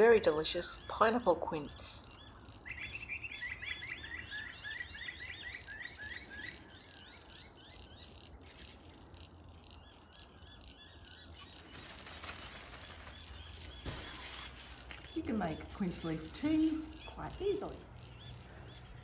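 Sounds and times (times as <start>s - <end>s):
small bird chirping: 0.0s - 19.0s
plastic bag rustling: 11.4s - 17.4s.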